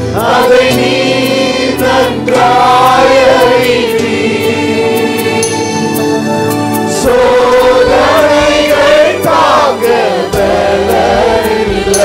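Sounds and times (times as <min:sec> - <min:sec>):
congregation singing praise song: 0:00.0 - 0:12.0
steady beat: 0:06.8 - 0:12.0.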